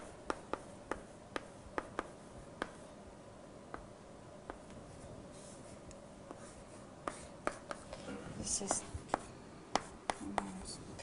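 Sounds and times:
sharp taps writing on board: 0:00.0 - 0:02.8, 0:06.3 - 0:07.9, 0:08.6 - 0:10.5.

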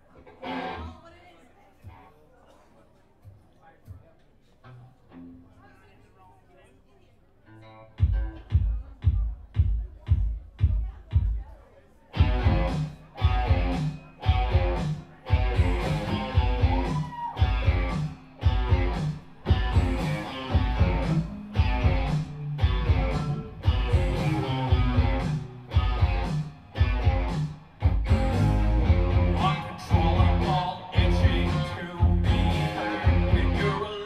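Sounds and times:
rock band playing: 0:12.2 - 0:34.0.

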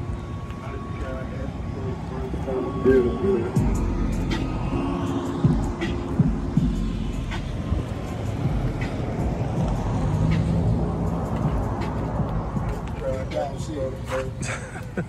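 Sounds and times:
background music: 0:00.0 - 0:15.0
vehicles rumbling: 0:00.0 - 0:15.0.

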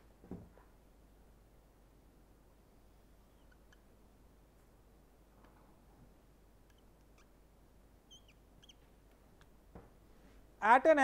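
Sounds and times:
marker squeaking on whiteboard: 0:03.3 - 0:03.9, 0:06.7 - 0:07.4, 0:08.1 - 0:08.9.

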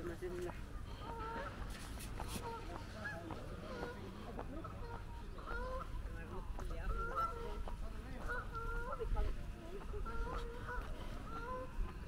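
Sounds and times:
geese honking: 0:02.4 - 0:12.0.

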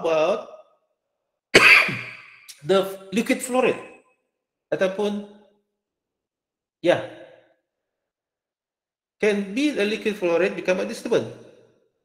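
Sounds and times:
man's voice: 0:00.0 - 0:00.4, 0:02.5 - 0:03.8.

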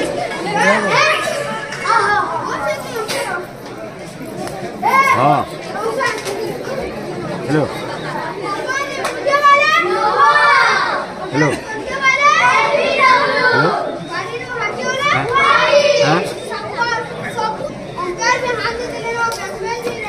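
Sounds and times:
children shouting and talking: 0:00.0 - 0:20.0.

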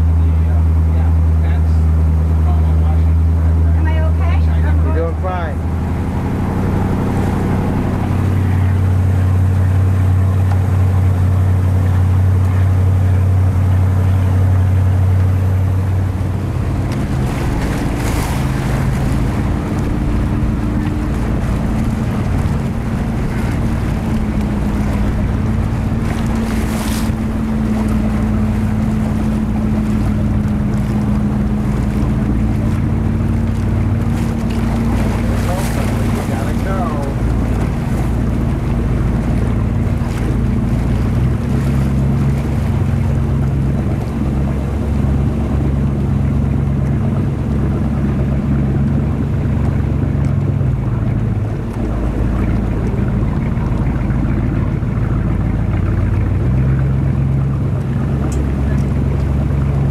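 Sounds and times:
motorboat engine running: 0:00.0 - 0:59.9
water rushing past hull: 0:00.0 - 0:59.9
wind on microphone: 0:03.8 - 0:59.9.

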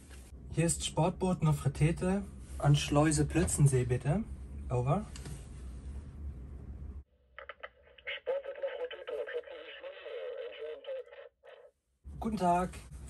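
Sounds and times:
low hum: 0:00.0 - 0:13.0
voice over radio speaker: 0:07.4 - 0:11.7.

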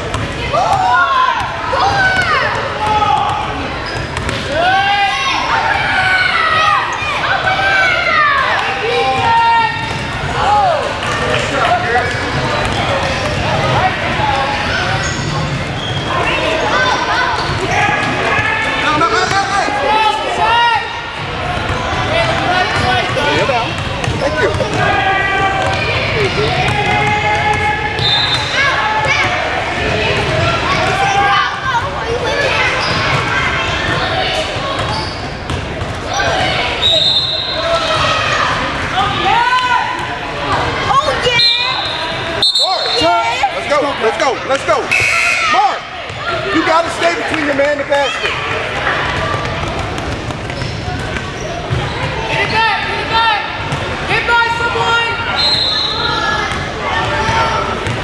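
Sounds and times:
voices shouting and talking: 0:00.0 - 0:58.0.

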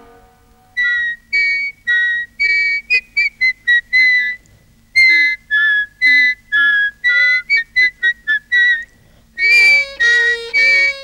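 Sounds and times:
person whistling a tune: 0:05.0 - 0:11.0.

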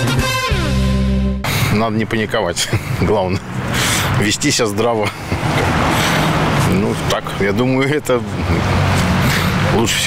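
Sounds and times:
man's voice: 0:01.5 - 0:05.9, 0:06.6 - 0:08.8, 0:09.5 - 0:10.0
car driving past: 0:05.3 - 0:07.1.

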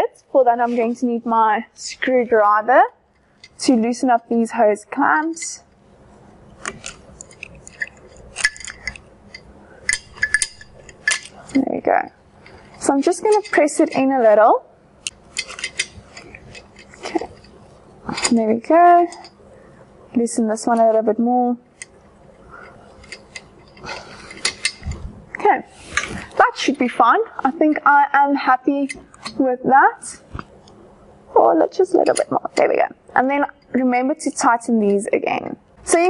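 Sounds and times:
screwdriver clicking on metal clamps: 0:06.6 - 0:11.6, 0:15.0 - 0:17.5.

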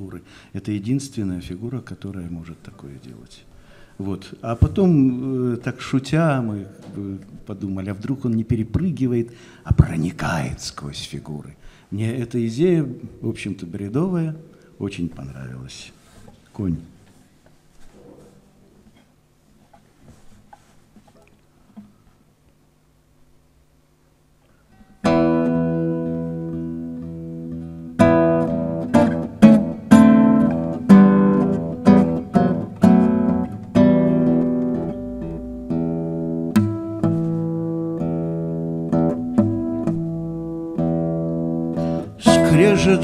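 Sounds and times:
acoustic guitar playing: 0:24.7 - 0:43.0
person singing: 0:42.0 - 0:43.0.

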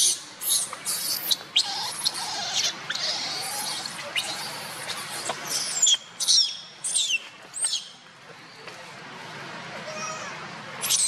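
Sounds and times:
infant monkey squealing: 0:00.0 - 0:07.8, 0:09.9 - 0:11.0
monkey wavering cry: 0:00.0 - 0:07.8, 0:09.9 - 0:11.0.

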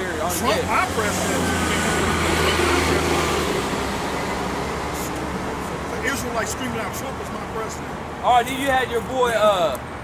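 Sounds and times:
road noise: 0:00.0 - 0:10.0
vehicle engine hum: 0:00.0 - 0:10.0.

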